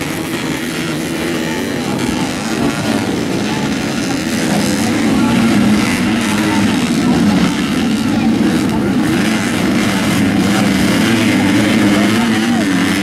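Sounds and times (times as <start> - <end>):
dirt bike engines revving: 0.0 - 13.0.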